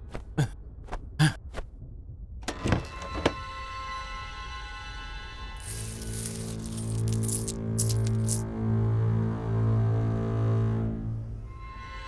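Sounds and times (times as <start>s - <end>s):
low string background music: 2.4s - 12.0s
coins clinking and jingling: 5.6s - 8.4s.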